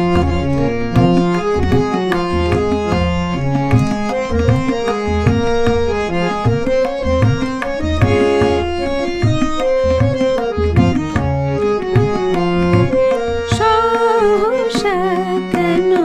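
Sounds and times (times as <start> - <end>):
held melody notes: 0.0 - 16.0
tabla playing rhythm: 0.0 - 16.0
woman singing: 13.4 - 16.0.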